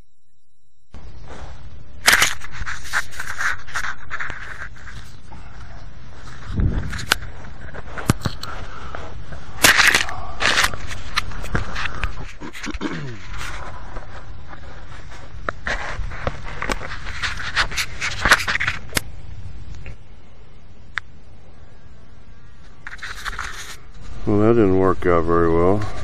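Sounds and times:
microphone handling noise: 0:00.9 - 0:20.1.

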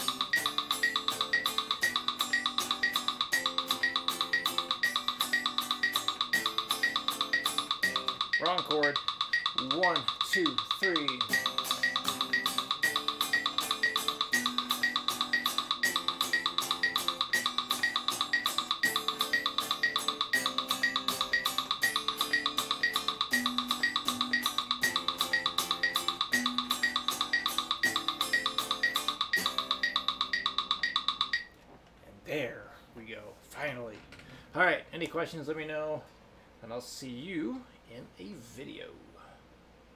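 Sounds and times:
electric guitar strumming chords: 0:00.0 - 0:31.3
metronome clicks: 0:00.0 - 0:31.6.

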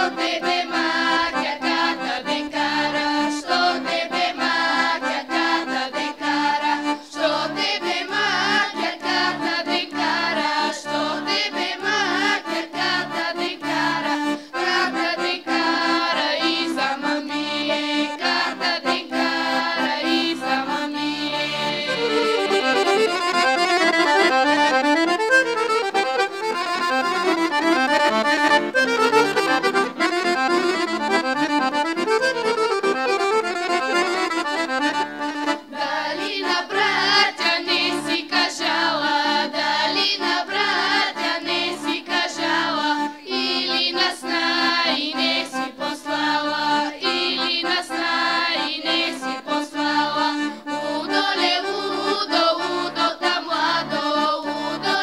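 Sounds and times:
girls' choir singing: 0:00.0 - 0:24.3, 0:35.4 - 0:55.0
accordion: 0:00.0 - 0:55.0.

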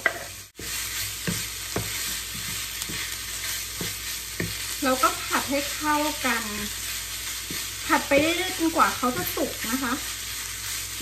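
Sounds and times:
pork sizzling in frying pan: 0:00.0 - 0:11.0
wooden spatula scraping pan: 0:00.0 - 0:11.0.

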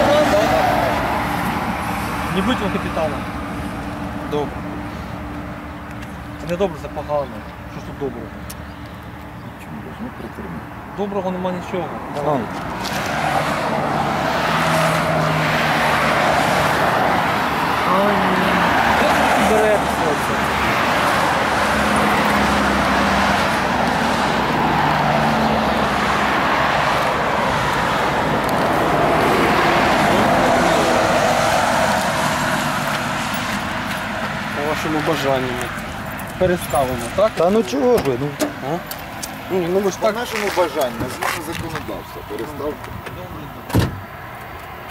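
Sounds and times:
highway traffic passing: 0:00.0 - 0:44.9.

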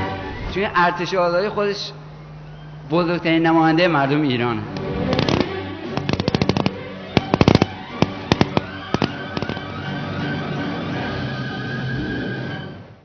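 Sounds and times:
background music: 0:00.0 - 0:13.0
rifle fire: 0:05.2 - 0:09.7.

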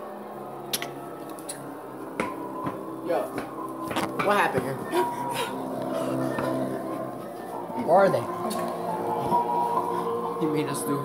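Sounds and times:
background music drone: 0:00.0 - 0:11.0.

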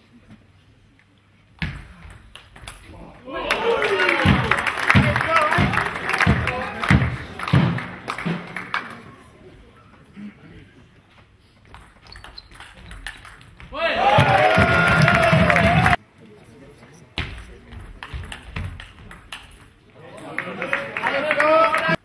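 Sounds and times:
crowd shouting and cheering: 0:03.1 - 0:09.4, 0:13.7 - 0:16.0, 0:20.0 - 0:22.0.

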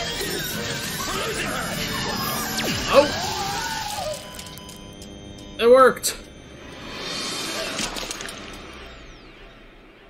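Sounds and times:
thin falling whine: 0:00.0 - 0:10.0.

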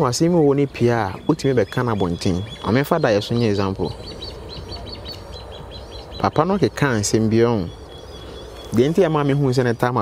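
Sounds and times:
bird chirping: 0:00.0 - 0:10.0
low steady hum: 0:00.0 - 0:10.0.

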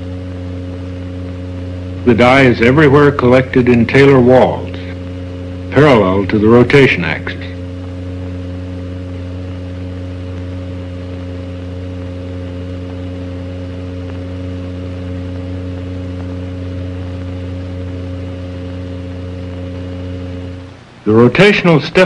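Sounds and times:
faint high whine: 0:00.0 - 0:22.0
steady low hum: 0:00.0 - 0:22.0.

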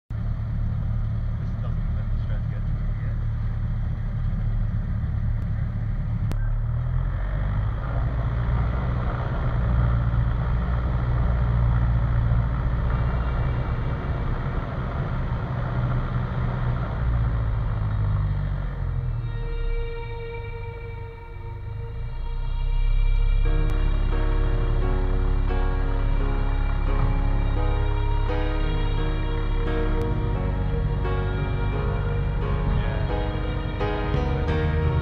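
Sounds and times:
airplane engine and propeller running: 0:00.1 - 0:35.0.

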